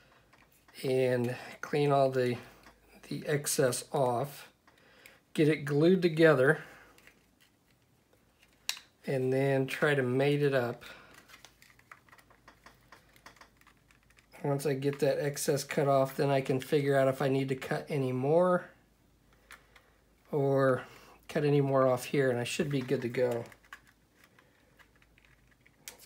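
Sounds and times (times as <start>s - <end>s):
plastic model parts clicking: 11.1s - 14.4s, 22.7s - 26.0s.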